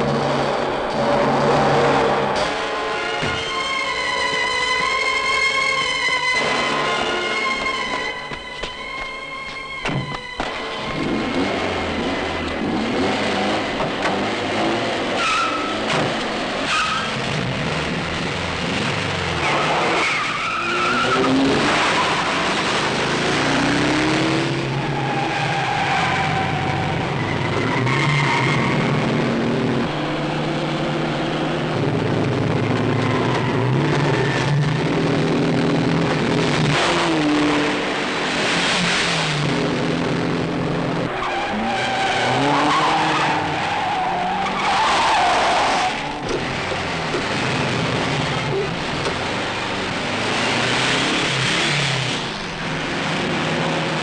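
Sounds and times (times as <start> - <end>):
car engines revving hard: 0.0 - 8.4, 9.4 - 54.0
tyres squealing and skidding: 0.0 - 17.7, 19.3 - 31.1, 32.0 - 35.4, 40.9 - 52.8.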